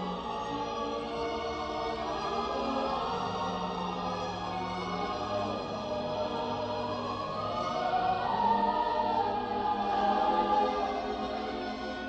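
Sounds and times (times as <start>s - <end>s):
choir singing long notes: 0.0s - 12.0s
orchestral film music: 0.0s - 12.0s.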